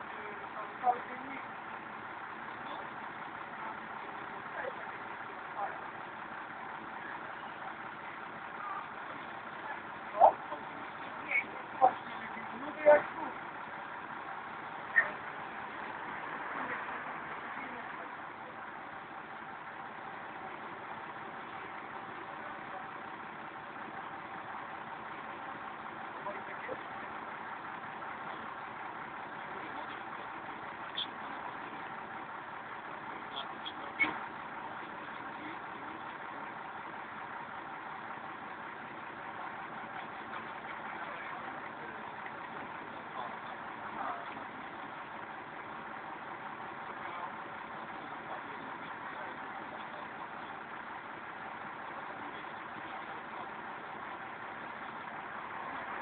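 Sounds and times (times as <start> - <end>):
vehicle engine idling: 0.0 - 56.0.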